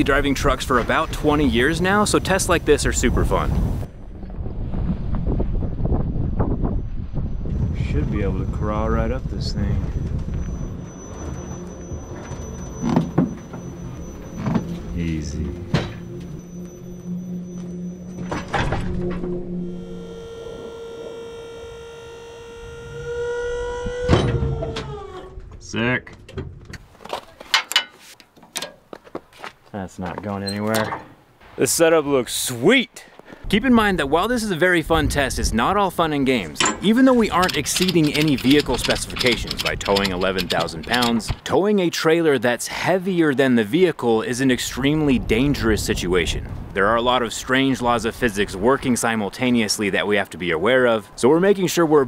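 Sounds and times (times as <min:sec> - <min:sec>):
wind buffeting microphone: 0:00.0 - 0:14.9, 0:33.4 - 0:41.4, 0:44.5 - 0:50.0
metallic hook clicks and clanks: 0:36.5 - 0:41.4.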